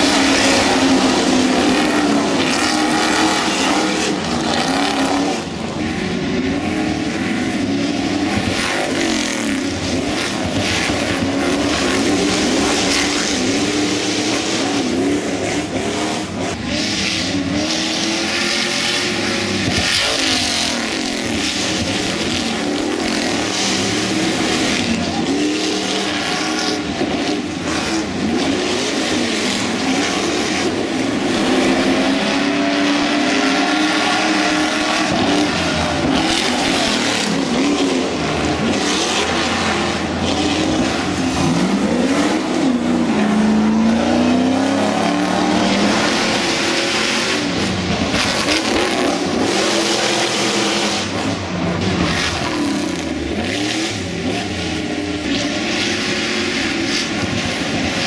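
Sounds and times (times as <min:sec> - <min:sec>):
racing truck engines revving: 0:00.0 - 0:58.0.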